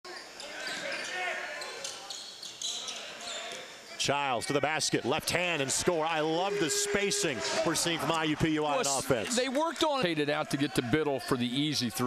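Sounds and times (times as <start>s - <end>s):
shoes squeaking: 0.1s - 3.6s
indistinct voices echoing: 5.1s - 9.8s.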